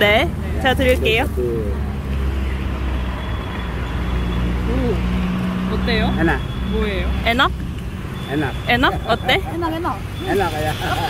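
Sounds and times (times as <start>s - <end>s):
low rumble of city traffic: 0.0s - 11.0s.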